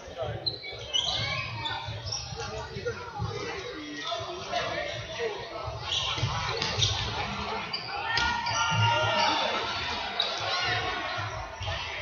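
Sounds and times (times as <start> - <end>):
players shouting in large hall: 0.9 - 12.0.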